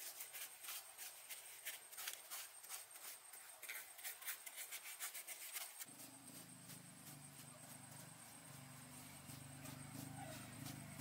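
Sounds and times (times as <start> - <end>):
paintbrush scraping on stone: 0.0 - 11.0.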